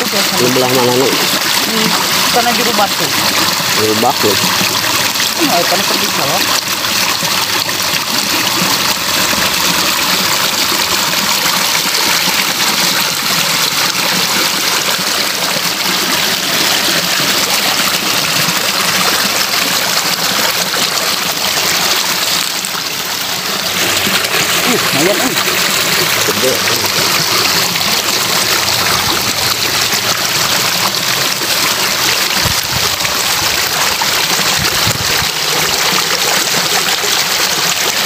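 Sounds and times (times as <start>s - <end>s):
water rushing over stones: 0.0s - 38.0s.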